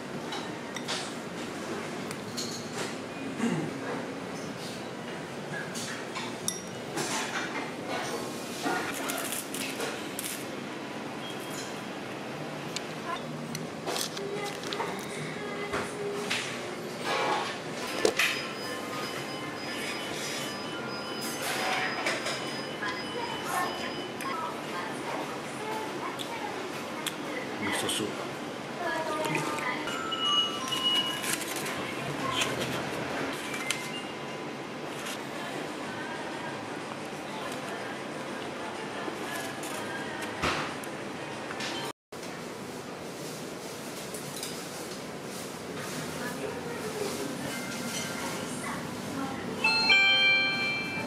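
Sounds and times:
tableware clinking against bowls: 0:02.2 - 0:03.0, 0:05.7 - 0:08.9, 0:47.5 - 0:48.4.

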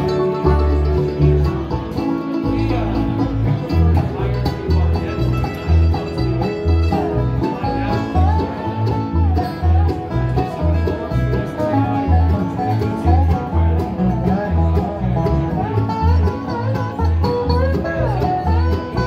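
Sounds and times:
banjo rolls: 0:00.0 - 0:19.0
mandolin: 0:00.0 - 0:19.0
slide guitar lead line: 0:00.0 - 0:19.0
strummed acoustic guitar: 0:00.0 - 0:19.0
upright bass pulsing: 0:00.0 - 0:19.0.

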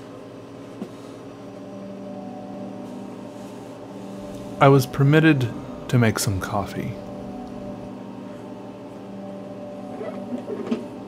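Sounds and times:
appliance electrical hum: 0:00.0 - 0:11.0
lower hum tone: 0:00.0 - 0:11.0.

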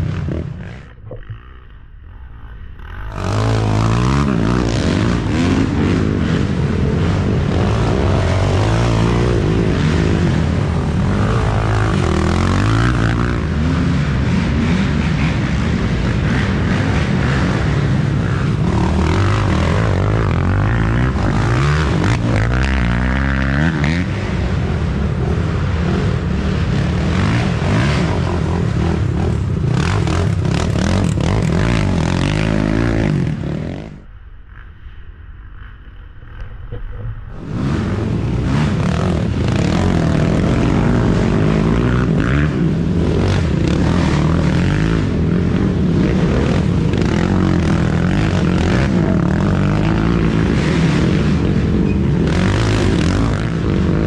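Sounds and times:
quad engines revving: 0:00.0 - 0:34.1, 0:35.7 - 0:54.0.

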